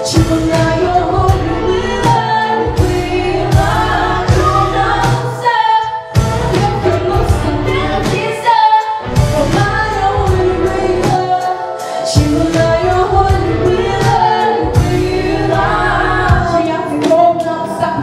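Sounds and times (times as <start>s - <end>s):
instrumental backing with beat: 0.0s - 18.0s
two women singing: 0.0s - 18.0s.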